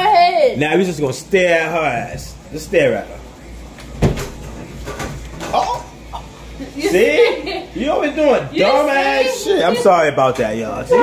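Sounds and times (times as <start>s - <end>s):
sudden knock: 4.0s - 4.4s.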